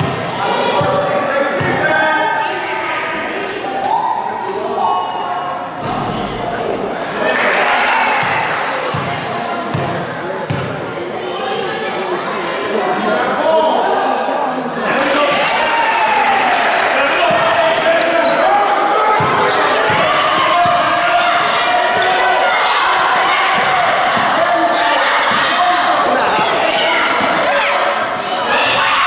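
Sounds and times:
spectators talking and calling out: 0.0 - 29.0.

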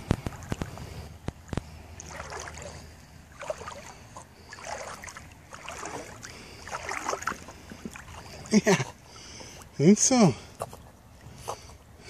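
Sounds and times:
water splashing and lapping: 0.0 - 12.0.

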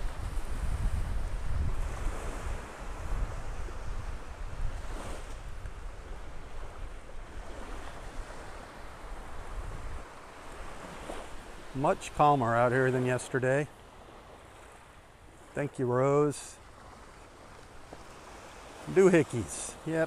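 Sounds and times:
wind gusting on microphone: 0.0 - 11.8
small waves washing on sand: 0.0 - 20.0.

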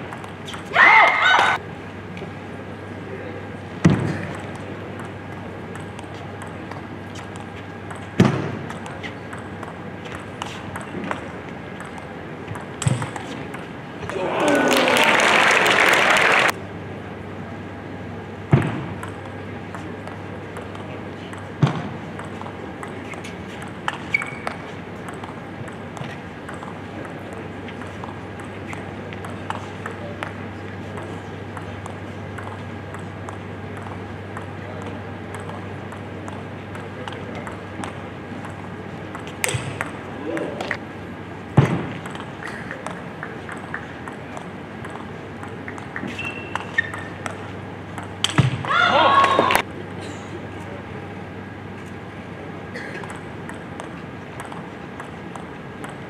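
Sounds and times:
loud shout: 0.7 - 1.6, 14.1 - 16.5, 48.6 - 49.6
table tennis ball clicks: 4.2 - 14.2, 19.0 - 30.4, 31.0 - 40.8, 53.0 - 56.0.

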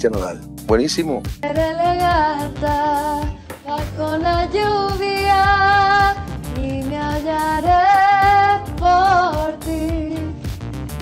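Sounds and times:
instrumental accompaniment: 0.0 - 11.0.

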